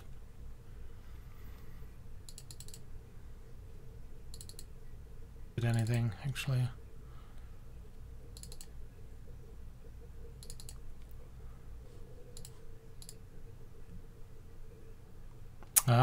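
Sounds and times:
faint steady hum: 0:00.0 - 0:16.0
computer mouse clicks: 0:02.2 - 0:02.9, 0:04.3 - 0:04.7, 0:05.7 - 0:06.0, 0:08.3 - 0:08.8, 0:10.4 - 0:11.2, 0:12.2 - 0:13.3.

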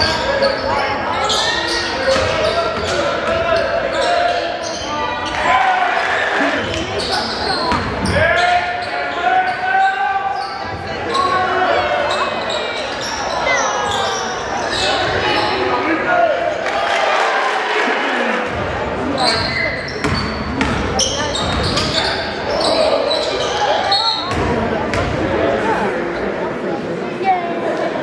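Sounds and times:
sneakers squeaking: 0:00.0 - 0:05.7, 0:06.4 - 0:15.9, 0:18.5 - 0:25.3.

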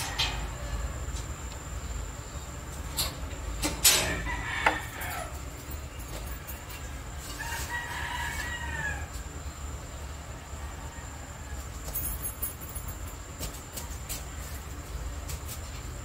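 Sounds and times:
rooster crowing: 0:00.0 - 0:01.3, 0:04.0 - 0:05.7, 0:06.3 - 0:09.6, 0:10.3 - 0:11.9.

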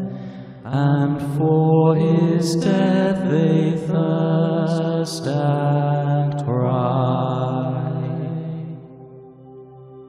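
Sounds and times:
unaccompanied hymn singing: 0:00.0 - 0:09.2.

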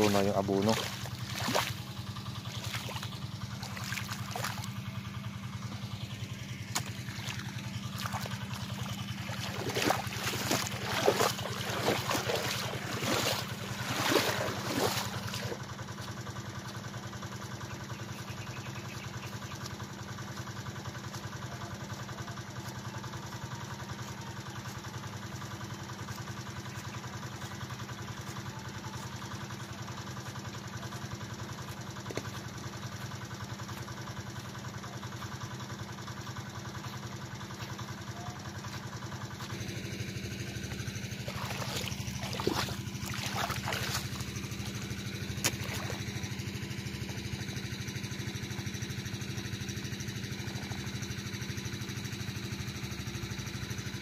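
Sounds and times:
small water pump engine running: 0:00.0 - 0:54.0.

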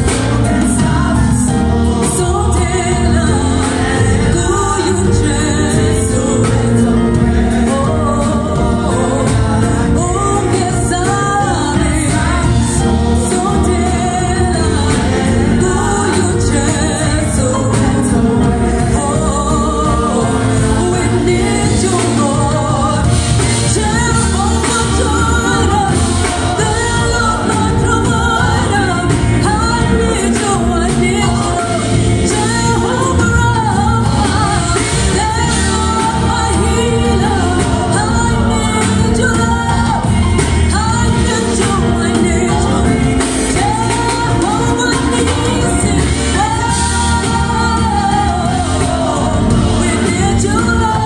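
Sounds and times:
backing singers: 0:00.0 - 0:51.0
live band music through pa: 0:00.0 - 0:51.0
woman singing lead: 0:00.0 - 0:51.0.

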